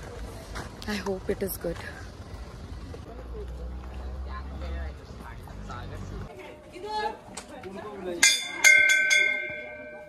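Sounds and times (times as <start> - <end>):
metal bell ringing: 8.2 - 10.0.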